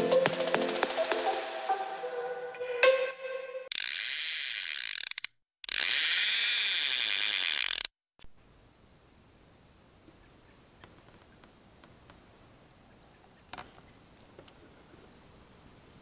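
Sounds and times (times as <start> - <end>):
intro music: 0.0 - 3.6
fishing reel drag clicking: 3.7 - 7.9.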